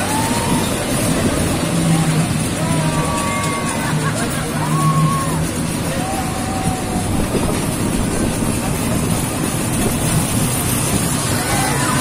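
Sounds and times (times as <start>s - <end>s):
roller coaster wheels rumbling on rails: 0.0s - 12.0s.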